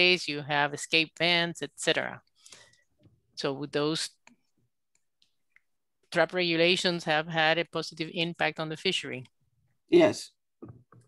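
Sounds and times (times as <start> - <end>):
person speaking: 9.9 - 10.8.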